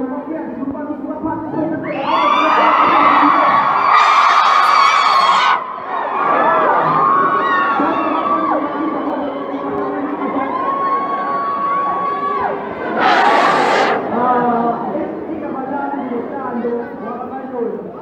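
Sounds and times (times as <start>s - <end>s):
audience cheering and screaming: 1.9s - 14.1s
long high scream: 3.8s - 5.6s, 10.6s - 14.0s.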